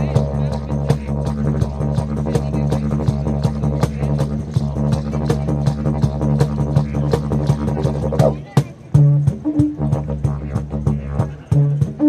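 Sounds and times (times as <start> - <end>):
didgeridoo drone: 0.0 - 12.0.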